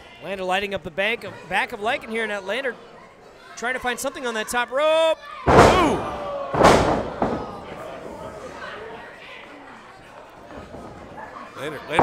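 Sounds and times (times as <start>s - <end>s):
crowd voices: 0.0s - 12.0s
body slamming onto wrestling ring: 5.5s - 8.0s.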